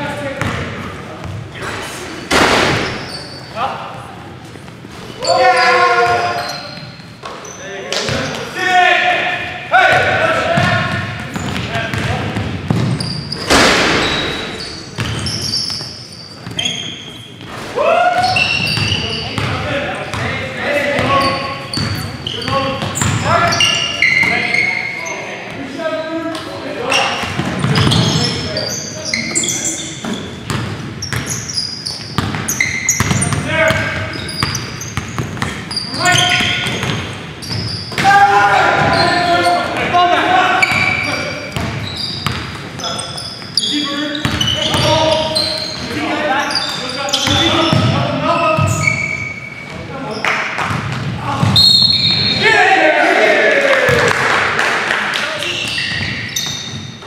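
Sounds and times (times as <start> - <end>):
basketball bouncing on hardwood floor: 10.6 - 14.2, 32.2 - 33.8, 34.4 - 38.0.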